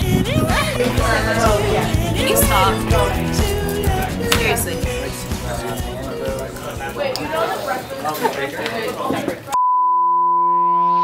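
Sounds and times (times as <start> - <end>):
high-pitched test-tone beep: 9.6 - 11.0.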